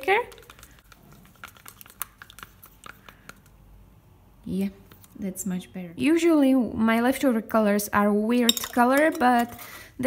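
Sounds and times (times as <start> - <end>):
stir stick scraping plastic cup: 0.0 - 3.6.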